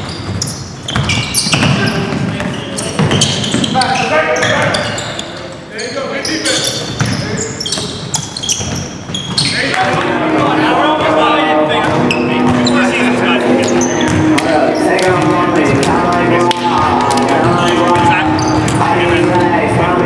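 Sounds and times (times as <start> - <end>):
basketball bouncing: 0.0 - 3.8, 6.8 - 11.2, 13.6 - 20.0
sneakers squeaking on hardwood: 0.0 - 20.0
overlapping voices and held notes: 13.4 - 19.9.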